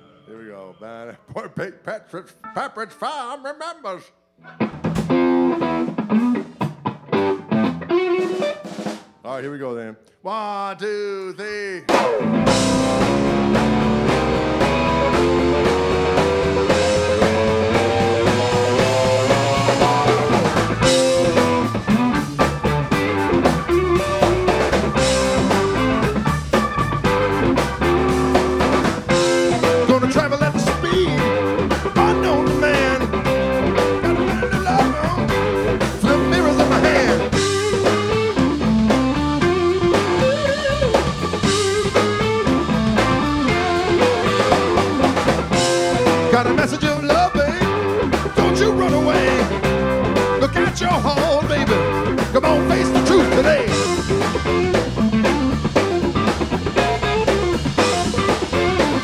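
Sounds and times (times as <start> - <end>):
electric guitar melody: 4.4 - 9.1, 11.9 - 59.0
electric bass: 4.5 - 8.3, 11.9 - 59.0
drum kit: 4.6 - 9.4, 11.8 - 59.0
hammond organ: 11.9 - 59.0.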